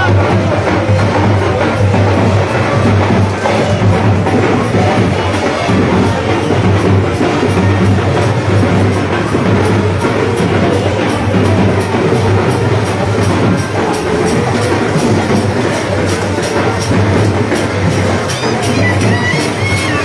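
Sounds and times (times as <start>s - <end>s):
drums and cymbals beating fast: 0.0s - 20.0s.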